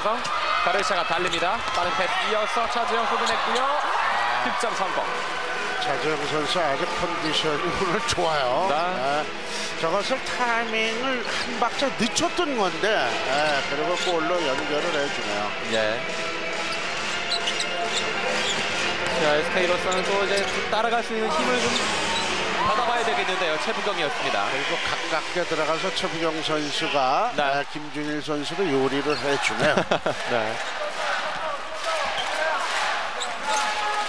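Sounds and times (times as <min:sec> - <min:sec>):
crowd noise: 0:00.0 - 0:34.0
sneakers squeaking on court: 0:16.6 - 0:20.7.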